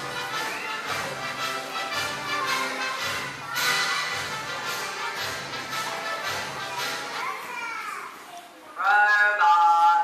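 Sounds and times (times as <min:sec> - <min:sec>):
young children's voices: 0:06.4 - 0:08.8
child calling out: 0:07.2 - 0:08.2.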